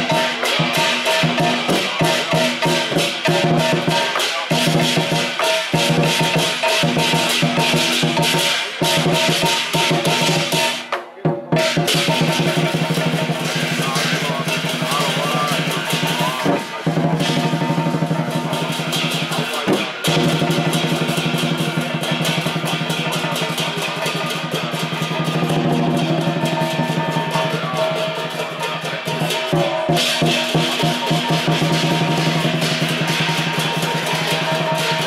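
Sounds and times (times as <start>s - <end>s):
brass cymbals clashing: 0.0s - 35.0s
large drum beaten fast: 0.0s - 35.0s.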